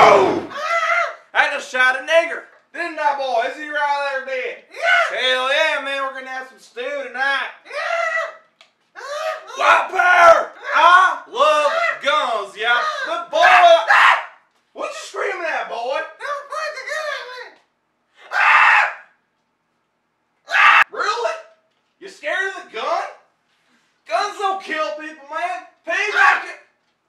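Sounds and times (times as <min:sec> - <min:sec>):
men yelling and screaming: 0:00.0 - 0:01.3, 0:07.7 - 0:14.4, 0:26.0 - 0:26.6.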